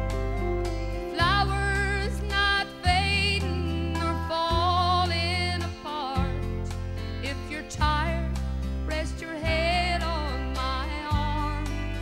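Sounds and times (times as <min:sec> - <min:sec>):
band accompaniment: 0:00.0 - 0:12.0
woman singing country song: 0:00.0 - 0:12.0.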